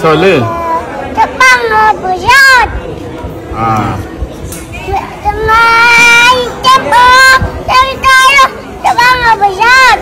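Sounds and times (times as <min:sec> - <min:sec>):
child chanting a prayer: 0:00.4 - 0:02.8, 0:04.8 - 0:10.0.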